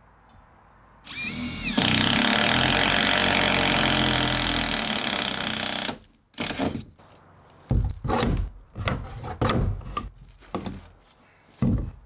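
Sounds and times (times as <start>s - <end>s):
power drill drilling into wood: 1.1s - 6.8s.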